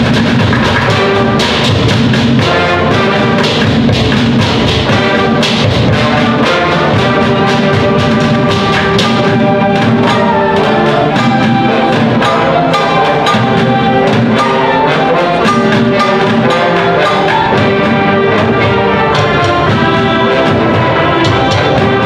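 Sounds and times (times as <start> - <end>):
concert band with brass: 0.0 - 22.0
junkyard percussion strikes: 0.0 - 22.0.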